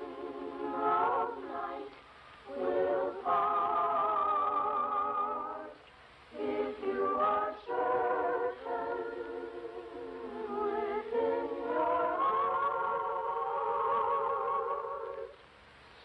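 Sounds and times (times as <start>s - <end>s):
children's choir singing: 0.0s - 15.4s.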